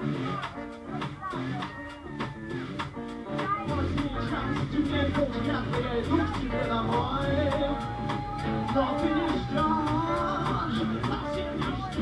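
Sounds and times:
drum kit and cymbals: 0:00.0 - 0:12.0
electric guitar chords: 0:00.0 - 0:12.0.

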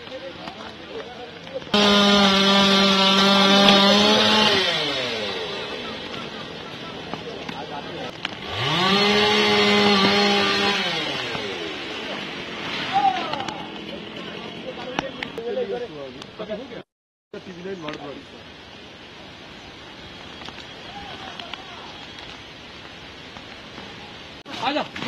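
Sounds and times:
chainsaw revving: 0:01.7 - 0:06.7, 0:08.3 - 0:12.9.

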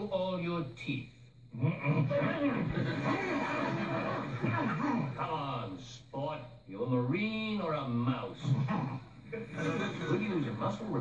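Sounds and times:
laughter: 0:01.6 - 0:04.9, 0:09.3 - 0:10.6.

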